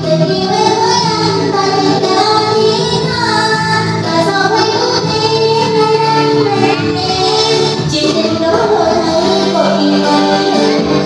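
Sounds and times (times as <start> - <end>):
karaoke backing track: 0.0 - 11.0
woman singing into a microphone: 0.0 - 11.0.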